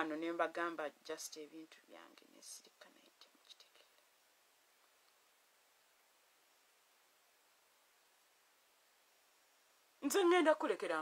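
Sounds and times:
woman whispering: 1.7 - 4.1.

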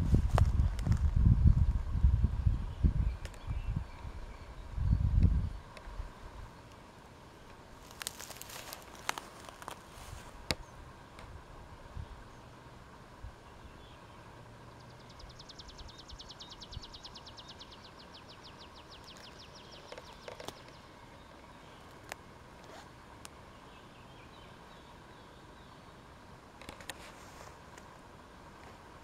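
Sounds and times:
wind buffeting microphone: 0.0 - 6.5
camera handling clicks and rustling: 26.6 - 27.1.

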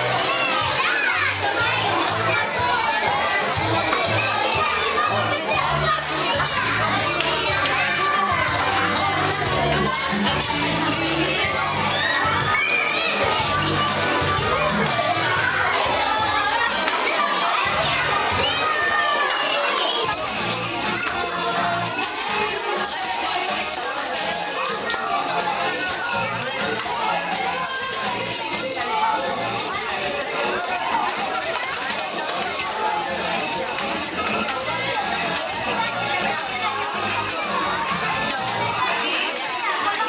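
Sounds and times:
children chattering and shouting: 0.0 - 40.0.

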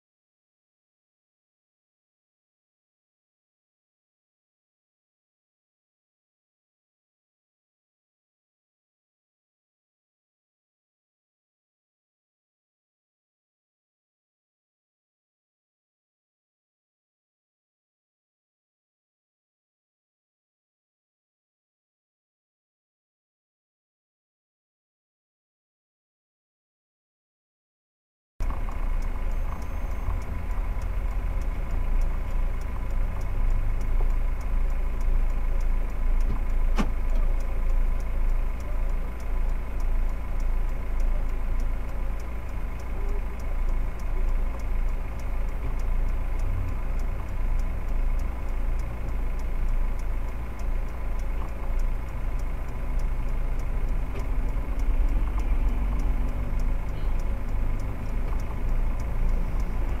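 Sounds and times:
car idling rumble: 28.4 - 60.0
faint click: 28.4 - 60.0.

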